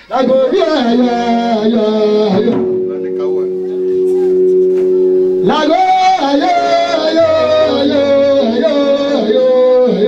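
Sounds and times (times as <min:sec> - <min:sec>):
man singing into microphone: 0:00.0 - 0:02.9, 0:05.4 - 0:10.0
steady held chord: 0:01.6 - 0:09.9.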